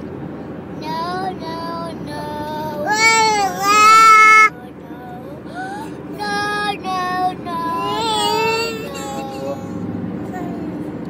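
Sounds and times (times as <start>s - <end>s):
car road noise: 0.0s - 11.0s
boy singing wordless notes: 0.8s - 5.3s, 6.2s - 10.6s.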